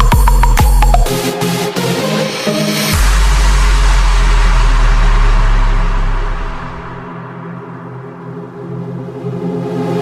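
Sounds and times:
deep held bass note: 3.0 - 7.1.

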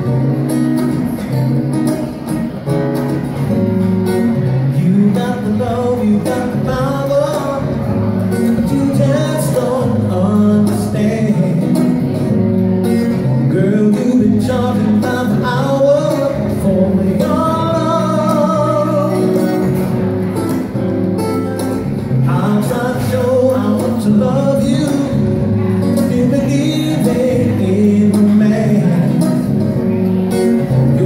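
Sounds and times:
acoustic guitar: 0.0 - 31.0
man singing: 4.5 - 12.3, 13.1 - 20.3, 22.1 - 31.0.

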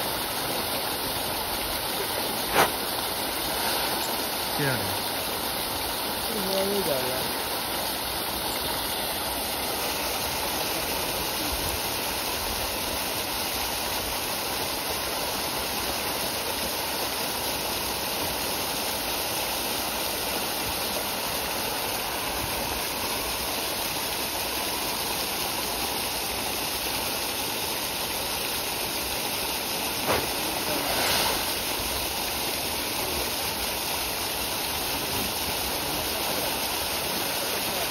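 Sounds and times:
water jet gushing into pond: 0.0 - 37.9.

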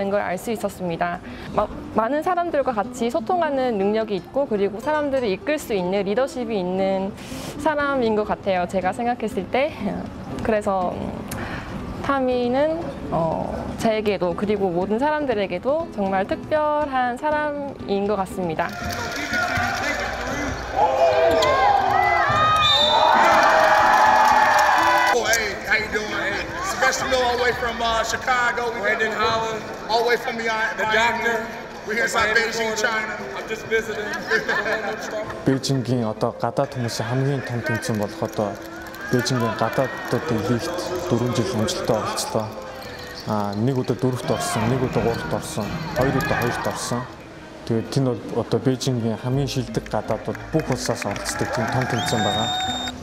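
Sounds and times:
voices echoing in hall: 18.5 - 21.8, 25.2 - 53.0.

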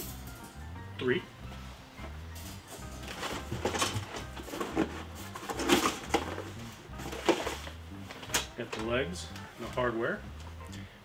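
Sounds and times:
cardboard rustling and knocking: 3.0 - 8.4.

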